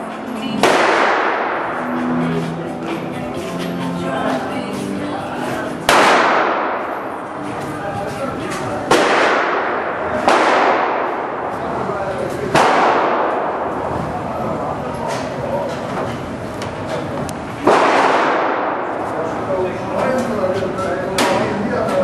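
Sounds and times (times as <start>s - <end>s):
gunshots echoing indoors: 0.0s - 2.2s, 5.8s - 7.4s, 8.8s - 13.9s, 17.6s - 19.2s
murmur of voices: 0.0s - 22.0s.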